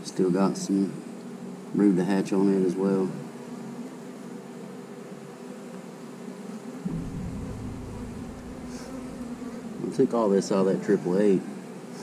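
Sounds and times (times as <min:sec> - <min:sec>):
honey bees buzzing: 0:00.4 - 0:12.0
low rumble: 0:06.9 - 0:09.8.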